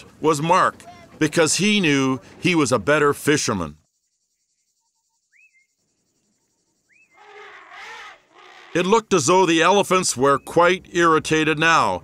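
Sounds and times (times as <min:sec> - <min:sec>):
faint outdoor background: 0:00.0 - 0:12.0
rising bird whistles: 0:04.4 - 0:08.8.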